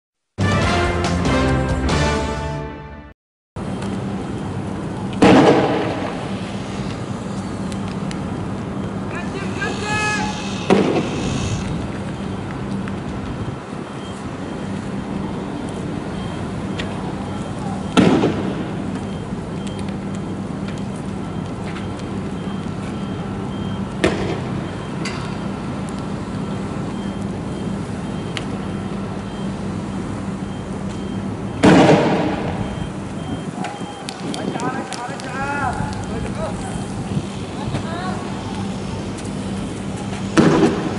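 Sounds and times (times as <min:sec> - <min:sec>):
street noise: 0:00.4 - 0:40.9
heavy vehicle engines rumbling: 0:03.6 - 0:40.9.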